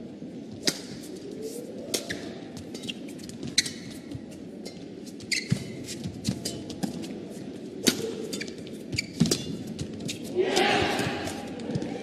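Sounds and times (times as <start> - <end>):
racket hitting shuttlecock: 7.8 - 8.5.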